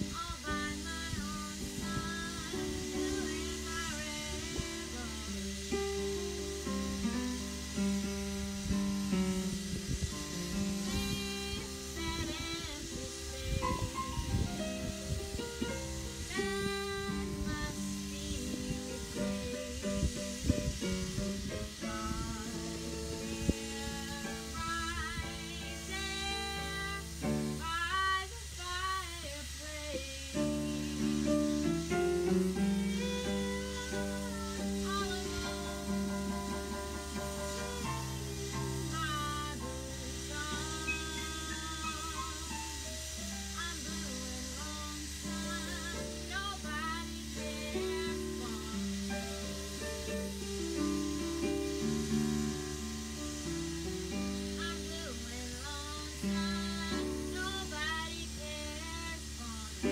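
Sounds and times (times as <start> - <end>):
woman singing blues: 0.0 - 59.9.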